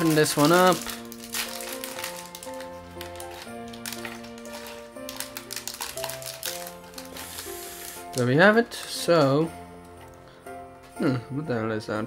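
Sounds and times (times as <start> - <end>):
plastic pieces tipped out: 0.0 - 7.5
plastic bag crinkling: 0.0 - 9.4
background music of held notes: 0.0 - 12.0.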